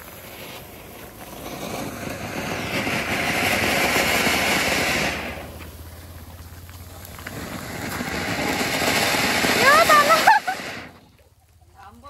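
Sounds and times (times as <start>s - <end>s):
fountain fireworks hissing: 0.0s - 12.0s.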